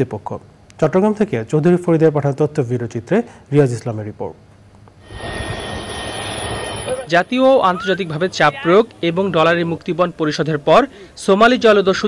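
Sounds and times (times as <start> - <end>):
propeller plane drone: 4.9 - 11.2.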